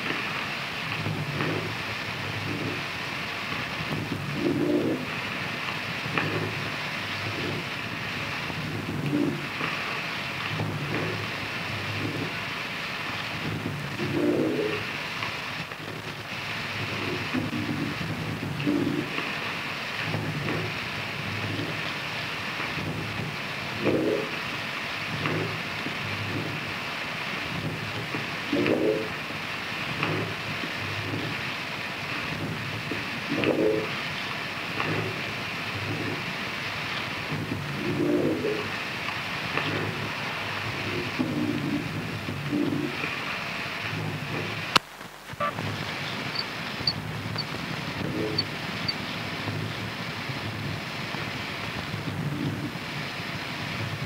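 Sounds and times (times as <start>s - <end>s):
harsh noise texture: 0.0s - 54.0s.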